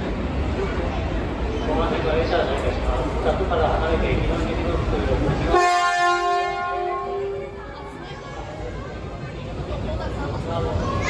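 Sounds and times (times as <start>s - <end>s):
station platform noise with voices: 0.0s - 11.0s
train horn blast: 5.5s - 7.6s.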